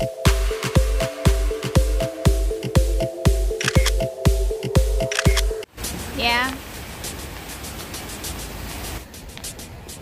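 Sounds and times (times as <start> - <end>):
electronic dance music: 0.0 - 6.4
water cascade rushing: 5.7 - 9.1.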